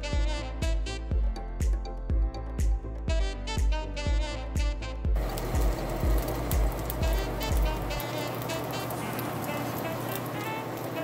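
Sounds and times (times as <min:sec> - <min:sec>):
background music with deep beat: 0:00.0 - 0:08.1
meat sizzling in oil: 0:05.2 - 0:11.0.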